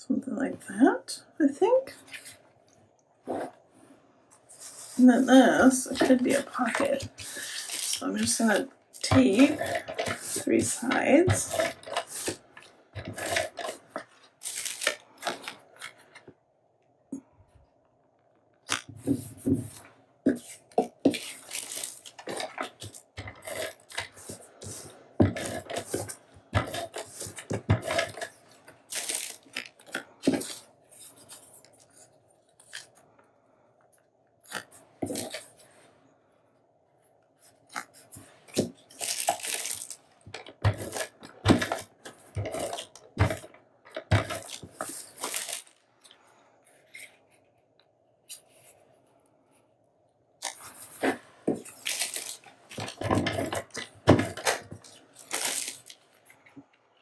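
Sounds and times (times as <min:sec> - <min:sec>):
paper being handled: 0:05.9 - 0:08.6, 0:18.7 - 0:32.9, 0:37.4 - 0:45.8, 0:50.4 - 0:56.0
adhesive tape ripping: 0:13.1 - 0:15.5, 0:28.9 - 0:30.6, 0:38.6 - 0:40.0, 0:44.4 - 0:45.8, 0:51.7 - 0:53.0, 0:54.4 - 0:56.0.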